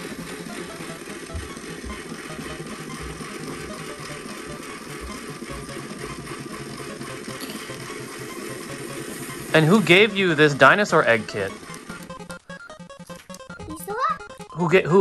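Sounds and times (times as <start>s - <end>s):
small battery motor running: 0.0s - 15.0s.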